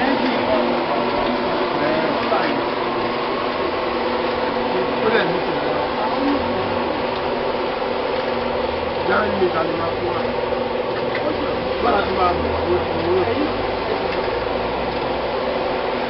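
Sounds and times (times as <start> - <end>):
faint voices: 0.0 - 3.3, 4.0 - 15.4
mix churning in drum: 0.0 - 16.0
mixer motor hum: 0.0 - 16.0.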